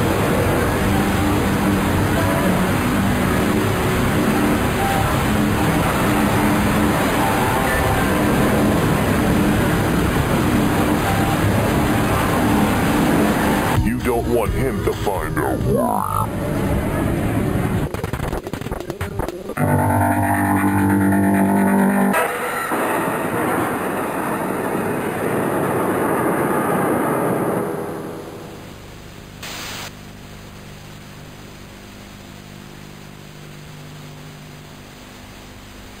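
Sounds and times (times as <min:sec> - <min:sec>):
loud droning chord: 0:00.0 - 0:16.8, 0:19.6 - 0:25.9
dense harsh noise: 0:00.0 - 0:36.0
low steady hum: 0:00.0 - 0:36.0
glitchy electronic stuttering: 0:00.8 - 0:16.3, 0:17.8 - 0:25.2
brief hiss: 0:29.4 - 0:30.0.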